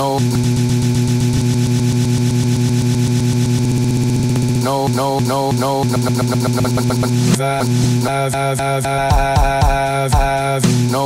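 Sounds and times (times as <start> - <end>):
looped music buzzing drone: 0.0 - 11.0.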